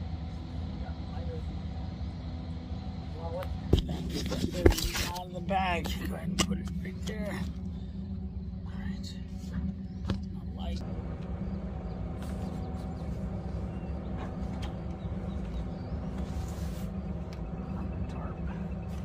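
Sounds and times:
machinery drone: 0:00.0 - 0:19.0.

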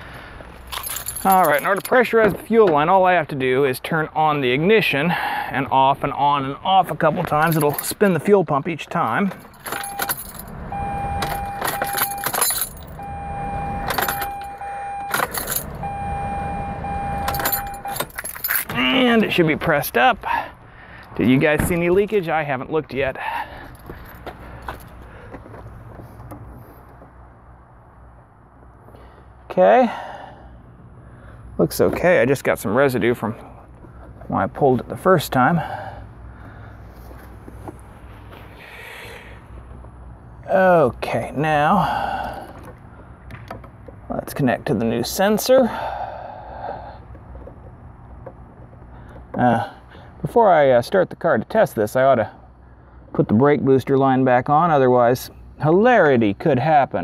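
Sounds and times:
keys jangling in ignition: 0:00.6 - 0:02.1, 0:07.3 - 0:08.0, 0:09.1 - 0:16.0, 0:16.8 - 0:19.3
fuel pump whine: 0:09.4 - 0:19.4.

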